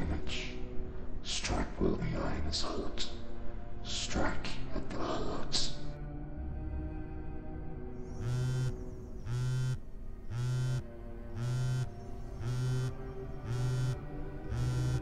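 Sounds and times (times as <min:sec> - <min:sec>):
faint background music: 0:00.0 - 0:15.0
mobile phone vibrating: 0:08.2 - 0:10.8, 0:11.4 - 0:15.0.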